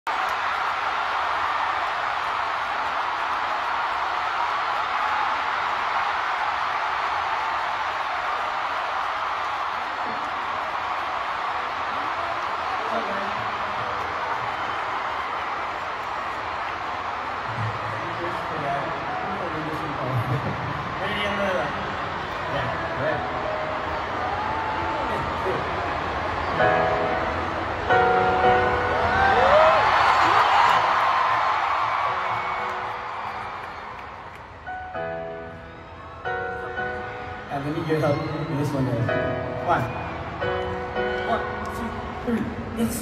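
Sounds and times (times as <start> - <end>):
arena crowd cheering and screaming: 0.0 - 43.0
man's amplified voice: 37.5 - 39.9, 41.2 - 43.0.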